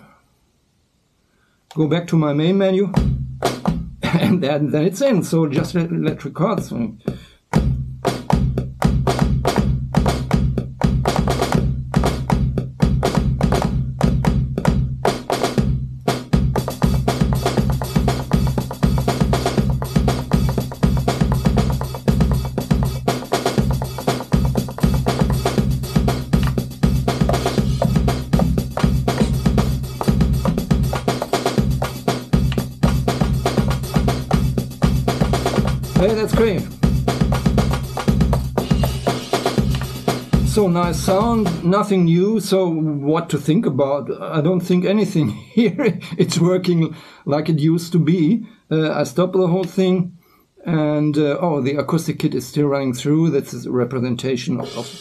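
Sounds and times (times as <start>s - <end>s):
acoustic drum kit pattern: 1.7s - 42.5s, 54.5s - 55.0s
busier brighter drum layer: 2.4s - 6.8s, 7.5s - 42.6s, 54.5s - 55.0s
steady low bass: 16.9s - 41.7s.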